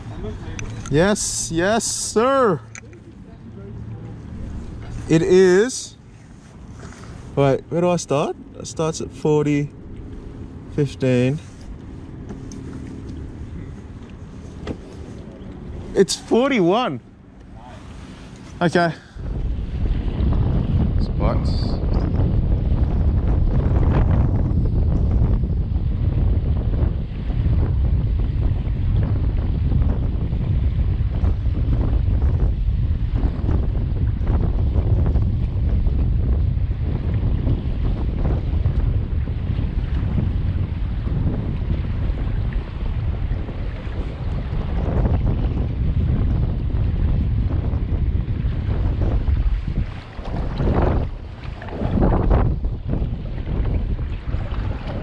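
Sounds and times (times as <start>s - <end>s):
wind buffeting microphone: 0.0s - 55.0s
water lapping against kayak hull: 1.9s - 8.6s, 9.3s - 21.0s, 25.7s - 55.0s.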